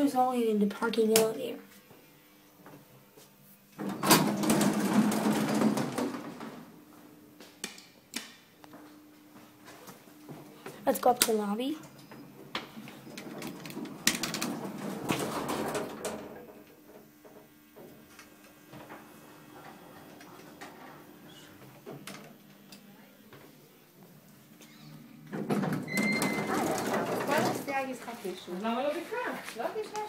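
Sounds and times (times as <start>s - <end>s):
elevator hum: 8.7s - 22.5s, 23.5s - 29.0s.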